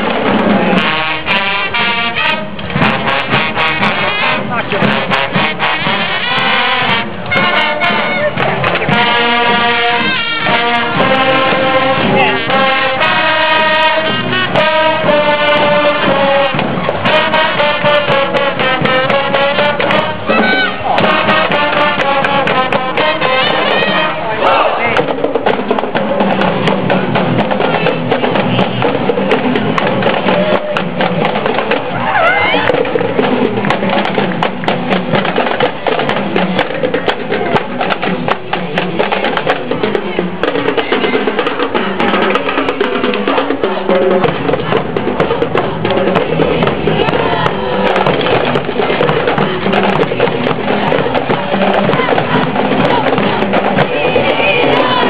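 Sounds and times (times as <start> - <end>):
snare and tenor drums: 0.0 - 55.0
brass horns holding notes: 0.5 - 24.8.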